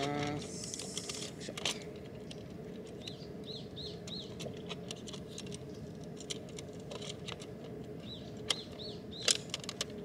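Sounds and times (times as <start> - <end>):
faint steady hum: 0.0 - 10.0
bird chirping: 3.0 - 4.4, 8.0 - 9.4.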